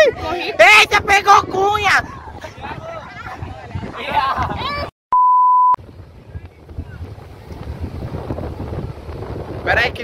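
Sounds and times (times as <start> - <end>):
excited voices: 0.0 - 4.9
wind buffeting microphone: 0.0 - 4.9, 5.8 - 10.0
censor bleep: 5.1 - 5.8.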